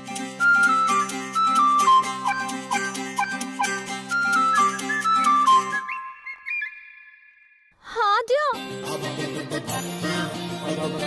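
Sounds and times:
flute-like melody: 0.0 - 7.6.

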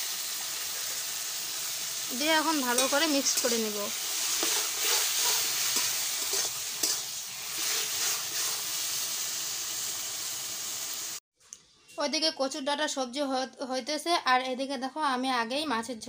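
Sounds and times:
vegetables sizzling in a wok: 0.0 - 11.2
metal spatula scraping a pan: 2.6 - 8.8.

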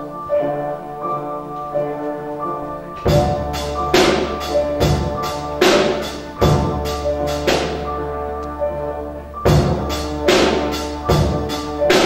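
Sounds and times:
small band playing slow piece: 0.0 - 12.0.

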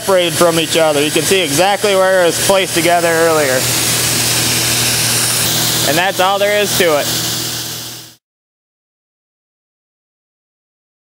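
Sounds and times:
loud compressed air hiss: 0.2 - 8.2.

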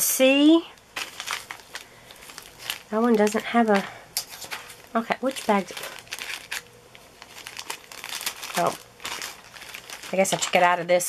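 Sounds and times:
plastic bags crinkling: 0.4 - 11.0.

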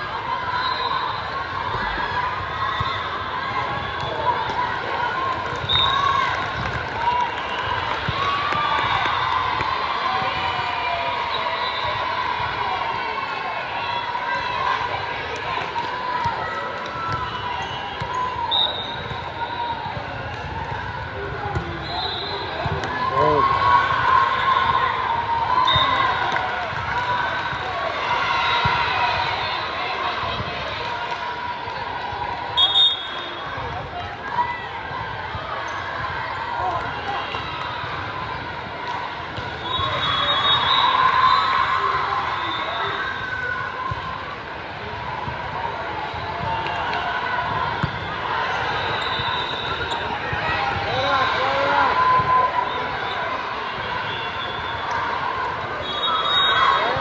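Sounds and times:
volleyballs bouncing and being hit: 2.8 - 10.5, 15.3 - 21.8, 22.5 - 23.7, 28.6 - 29.4, 43.8 - 52.4.

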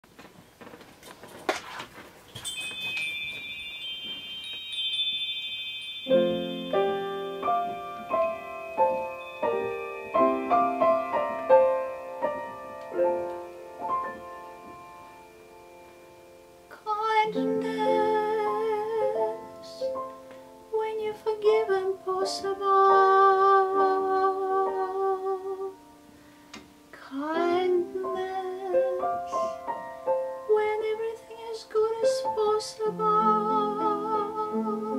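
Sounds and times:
chimes ringing: 2.3 - 16.4
piano chords: 2.6 - 34.9
intake of breath: 26.1 - 26.6, 29.2 - 29.8.

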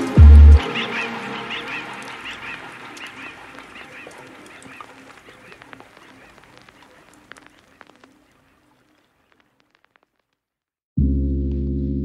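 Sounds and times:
birds honking: 0.0 - 9.6
light ticks: 1.8 - 10.1.

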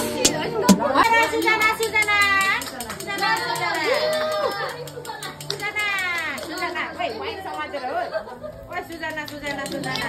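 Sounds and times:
voices chattering: 0.0 - 10.0.

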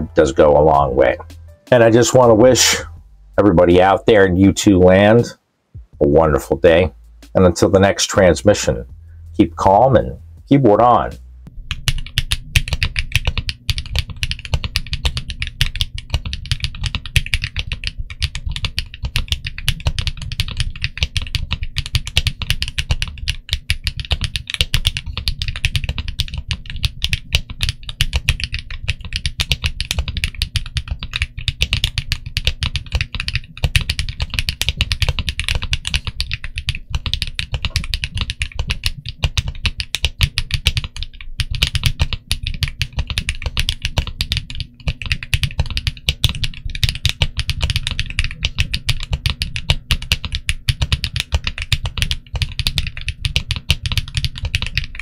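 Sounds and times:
fast typing on mechanical keyboard: 11.7 - 55.0.

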